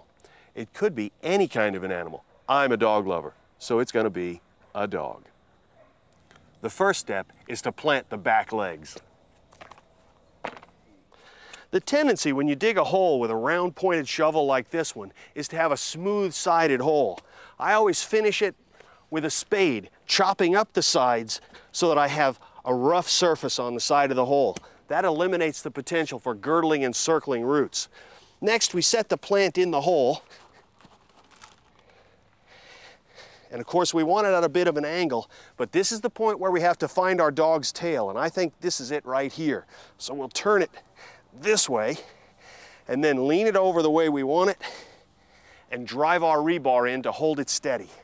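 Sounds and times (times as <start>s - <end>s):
rustling of foliage and soil: 5.1s - 48.0s.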